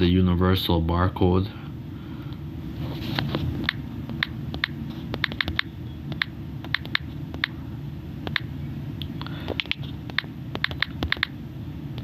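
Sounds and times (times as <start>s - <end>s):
low steady hum: 0.0s - 12.0s
touchscreen typing clicks: 3.6s - 7.6s, 9.6s - 11.4s.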